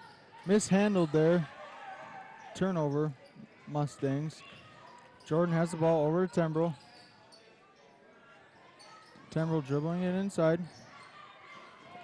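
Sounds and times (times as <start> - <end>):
faint gymnasium background noise: 0.0 - 12.0.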